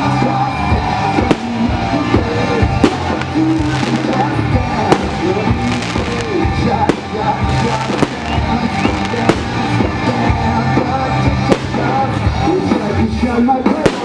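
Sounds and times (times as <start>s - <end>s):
music with heavy bass: 0.0s - 14.0s
person singing: 0.0s - 14.0s.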